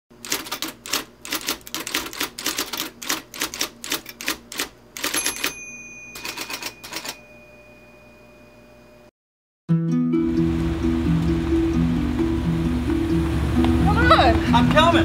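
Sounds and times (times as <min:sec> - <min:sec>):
typewriter keys clacking: 0:00.2 - 0:05.6, 0:06.2 - 0:07.2
high ring: 0:05.1 - 0:09.1.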